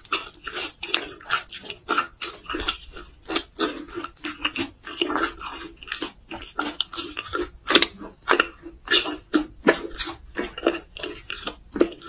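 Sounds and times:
person chewing food: 0.0 - 12.0.

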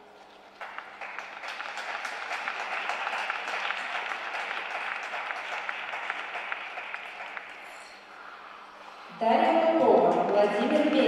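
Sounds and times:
audience applauding: 0.3 - 7.8.

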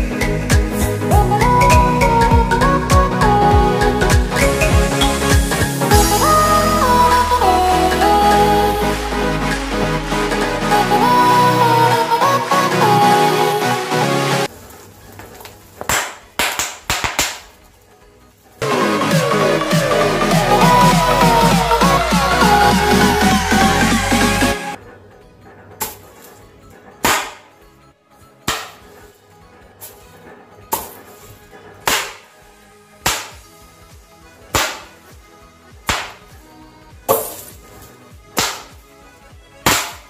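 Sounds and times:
electronic music: 0.0 - 14.5, 18.6 - 24.8, 28.9 - 40.0
snap bangs popping: 15.8 - 17.5, 27.0 - 27.5, 28.5 - 28.9, 31.8 - 32.3, 33.0 - 33.5, 34.5 - 35.0, 35.8 - 36.3, 38.3 - 38.8, 39.6 - 40.0.

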